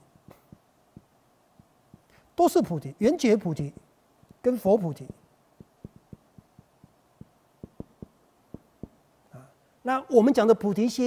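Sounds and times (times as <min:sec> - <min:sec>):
marker tapping on whiteboard: 0:05.0 - 0:09.0.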